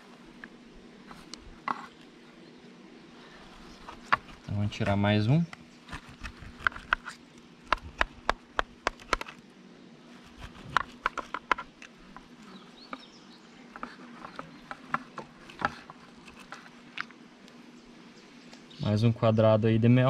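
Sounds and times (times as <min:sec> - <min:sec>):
faint steady hum: 0:00.0 - 0:20.0
knife clicking and scraping wood: 0:05.9 - 0:09.4, 0:10.4 - 0:12.3.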